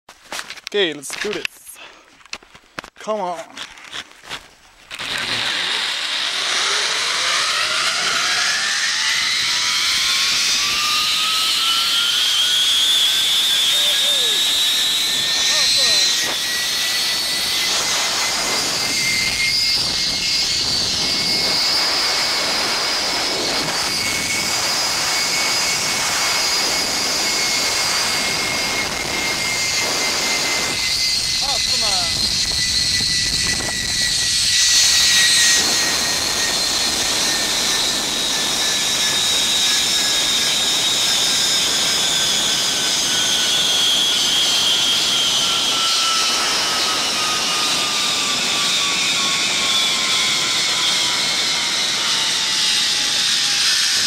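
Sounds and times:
zipline pulleys whining on cable: 0:04.9 - 0:54.0
wind rushing past microphone: 0:14.2 - 0:42.9.

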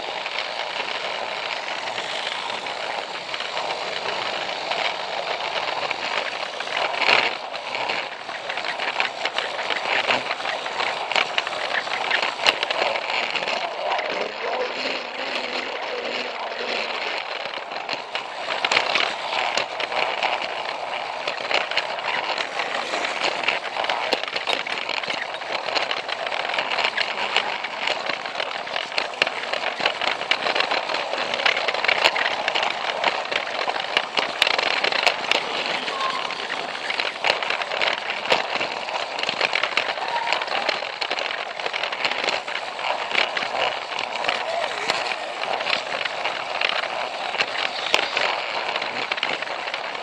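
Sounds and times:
toy train motor and gears rattling: 0:00.0 - 0:50.0
wheels clicking on plastic track: 0:00.0 - 0:50.0.

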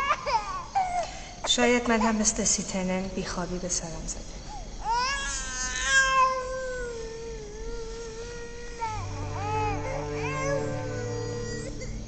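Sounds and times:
baby crying: 0:00.0 - 0:01.2, 0:04.8 - 0:12.0.

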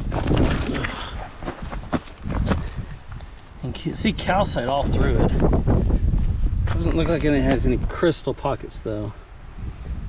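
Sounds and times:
footsteps on gravel: 0:00.0 - 0:03.5, 0:04.8 - 0:07.8
wind buffeting microphone: 0:00.0 - 0:10.0.

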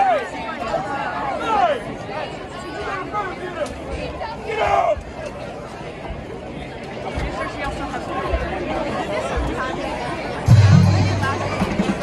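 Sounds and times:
spectators chattering: 0:00.0 - 0:12.0
marching band playing: 0:10.5 - 0:12.0.

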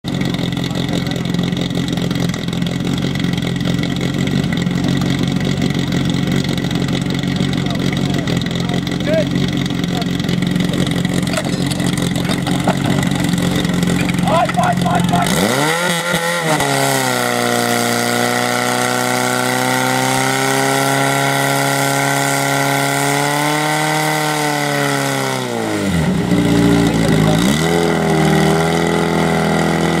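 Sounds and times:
fire pump engine revving: 0:00.0 - 0:30.0.

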